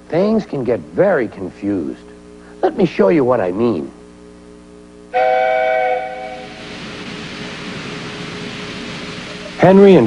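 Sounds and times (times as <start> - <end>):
steam locomotive whistle: 5.1 - 6.7
steam hissing: 5.2 - 10.0.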